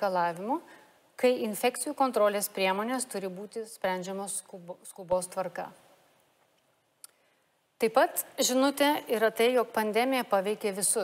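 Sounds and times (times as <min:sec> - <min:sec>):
woman speaking: 0:00.0 - 0:05.8, 0:07.8 - 0:11.0.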